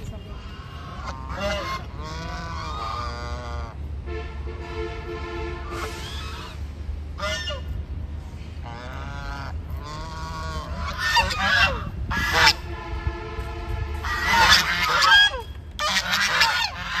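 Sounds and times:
geese honking: 0:00.0 - 0:03.8, 0:04.6 - 0:07.8, 0:08.6 - 0:13.0, 0:14.0 - 0:17.0.

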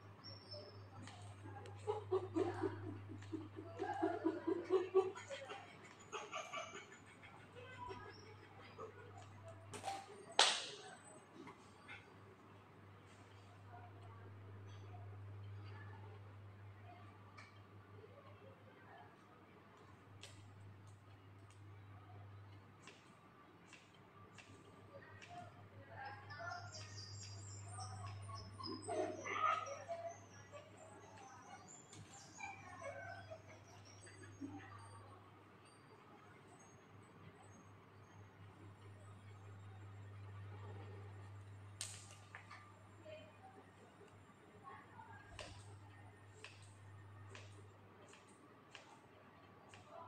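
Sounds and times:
small birds chirping: 0:00.0 - 0:04.4, 0:19.8 - 0:50.0
murmur of voices: 0:00.0 - 0:20.2
people laughing: 0:00.5 - 0:12.1, 0:24.9 - 0:35.8.

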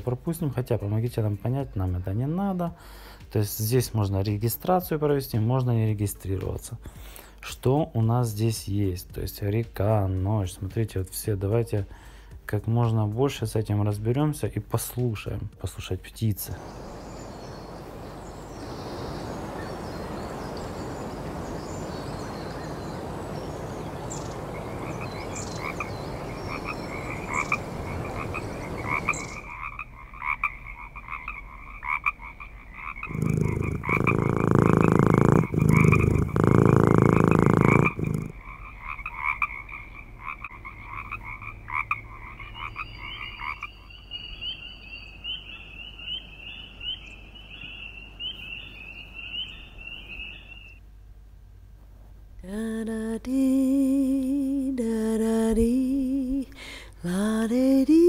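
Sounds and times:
birds chirping: 0:15.8 - 0:50.8
frogs croaking: 0:16.4 - 0:51.0
rushing ambience: 0:16.5 - 0:30.0
low cat purr: 0:33.1 - 0:38.4.

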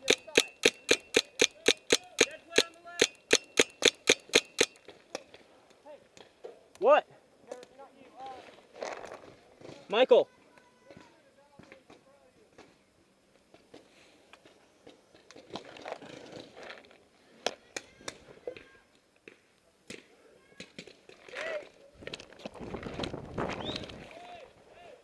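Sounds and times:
paintball markers firing: 0:00.0 - 0:05.3
rustling noise: 0:08.0 - 0:10.0, 0:21.0 - 0:24.2
distant shouting: 0:23.6 - 0:25.0.

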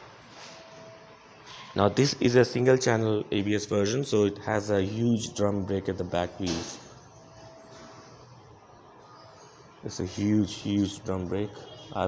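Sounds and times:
parking lot background noise: 0:00.0 - 0:12.0.

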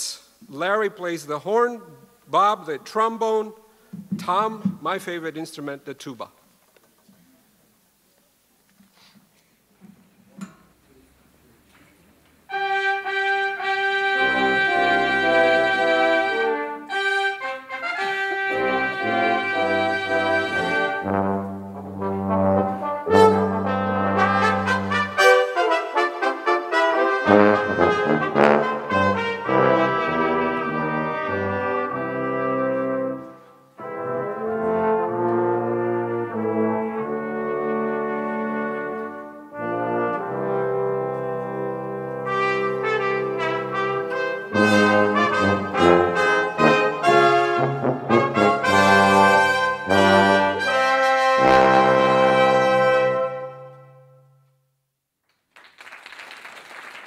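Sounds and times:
brass quintet playing: 0:12.5 - 0:54.5.

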